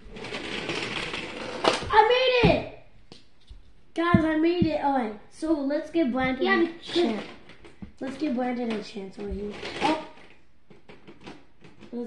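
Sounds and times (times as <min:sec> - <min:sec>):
toy truck rattling whir: 0:00.0 - 0:01.9, 0:06.6 - 0:12.0.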